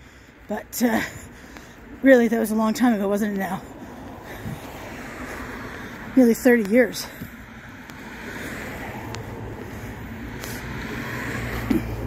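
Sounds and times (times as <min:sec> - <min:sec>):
traffic hum: 0:00.0 - 0:12.0.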